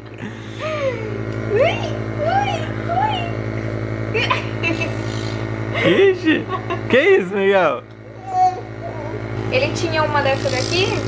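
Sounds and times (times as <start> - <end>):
nebulizer electric hum: 0.0 - 11.0.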